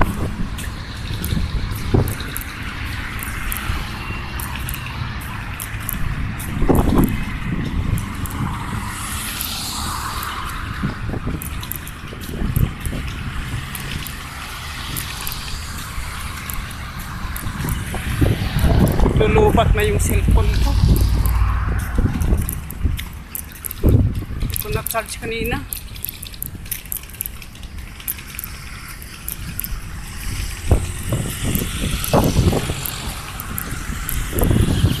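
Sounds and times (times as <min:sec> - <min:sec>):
road traffic passing: 0:00.0 - 0:35.0.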